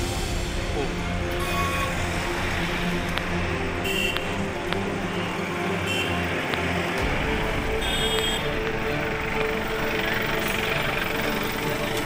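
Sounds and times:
music: 0.0s - 12.0s
road traffic: 0.0s - 12.0s
vehicle engines running: 0.3s - 12.0s.

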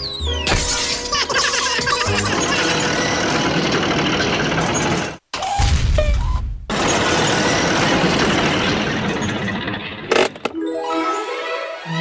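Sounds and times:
cartoon music: 0.0s - 3.1s
crash of clattering debris: 6.7s - 10.4s.

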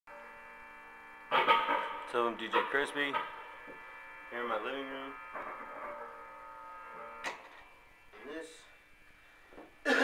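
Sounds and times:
electrical mains hum: 0.1s - 10.0s.

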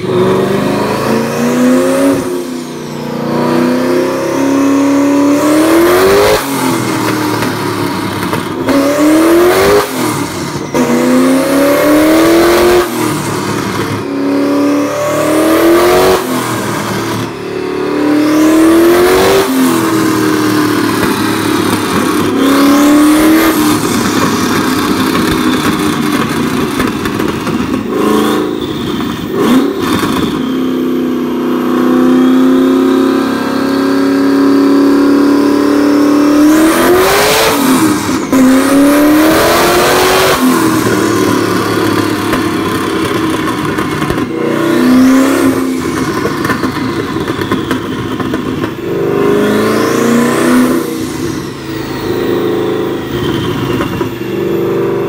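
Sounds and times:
car engine revving: 0.0s - 55.0s
exhaust cracks: 6.3s - 12.0s, 19.4s - 30.5s, 37.5s - 52.0s
turbo whistle: 14.0s - 26.8s, 27.4s - 55.0s.

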